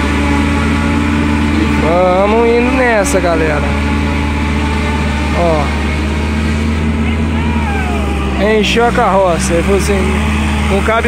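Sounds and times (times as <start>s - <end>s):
tractor engine droning: 0.0s - 11.0s.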